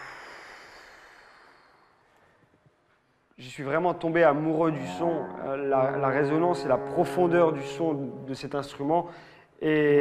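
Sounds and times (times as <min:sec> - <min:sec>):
faint alphorn note: 0:04.7 - 0:08.6.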